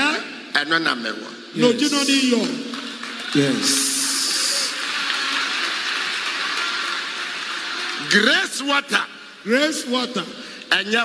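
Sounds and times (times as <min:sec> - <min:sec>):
crowd applauding: 0:02.0 - 0:08.7.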